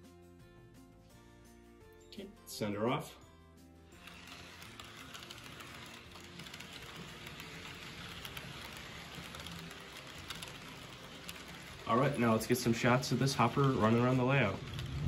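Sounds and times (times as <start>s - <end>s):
model train rattling on track: 4.0s - 15.0s
low hum: 14.5s - 15.0s.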